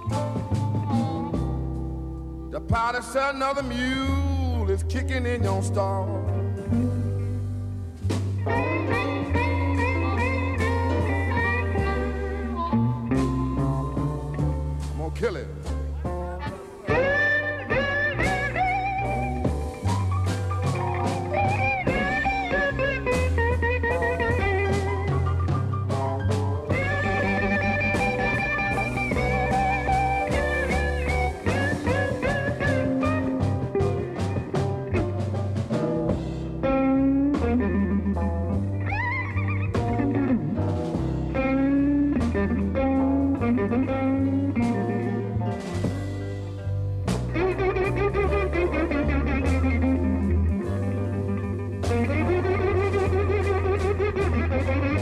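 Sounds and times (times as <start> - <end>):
electric blues band playing: 0.0 - 55.0
harmonica wavering held notes: 8.5 - 13.8.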